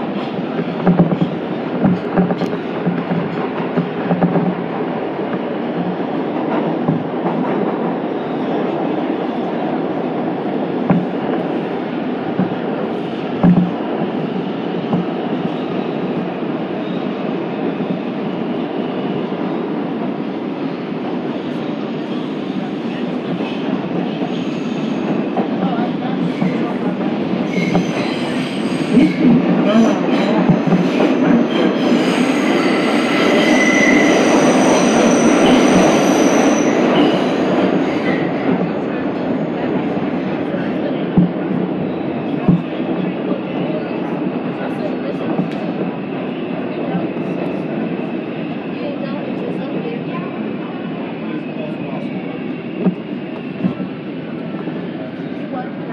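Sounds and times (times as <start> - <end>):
high squealing of train wheels: 0.0 - 55.8
rumble of train wheels on rail: 0.0 - 55.9.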